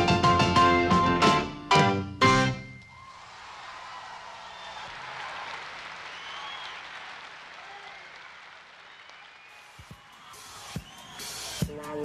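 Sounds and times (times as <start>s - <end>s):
audience applauding: 2.9s - 11.7s.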